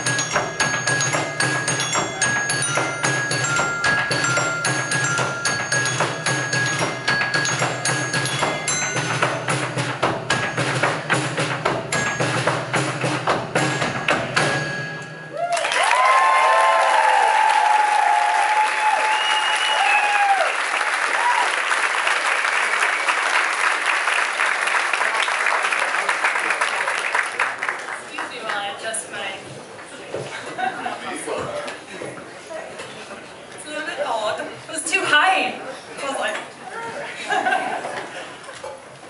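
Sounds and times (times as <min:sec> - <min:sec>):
live band music: 0:00.0 - 0:15.2
sharp percussion strokes: 0:00.0 - 0:15.5
audience cheering with whoops: 0:15.3 - 0:21.8
audience applauding: 0:15.3 - 0:28.8.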